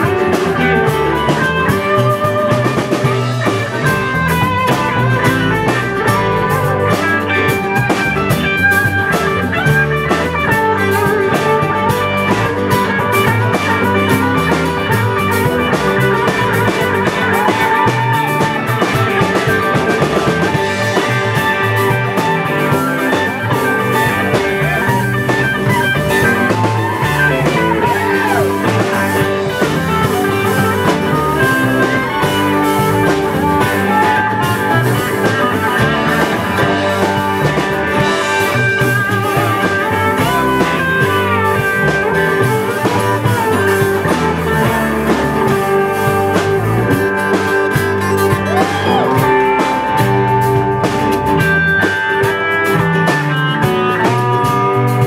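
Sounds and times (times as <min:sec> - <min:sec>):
lead guitar bending notes: 0:00.0 - 0:55.0
live rock band playing: 0:00.0 - 0:55.0.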